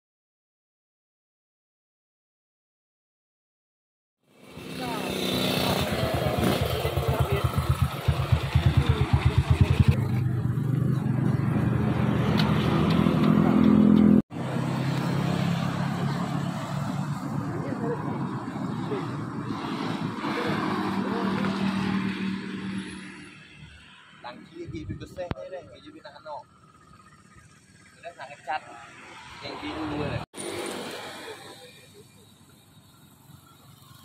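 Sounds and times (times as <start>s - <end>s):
motorcycle engine idling: 4.8s - 11.4s, 25.8s - 28.2s.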